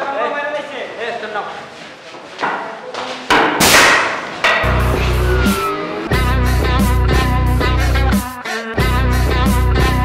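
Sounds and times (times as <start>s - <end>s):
sticks striking: 3.3s - 6.0s
noisy crash: 3.5s - 6.3s
heavy rock music: 4.5s - 10.0s.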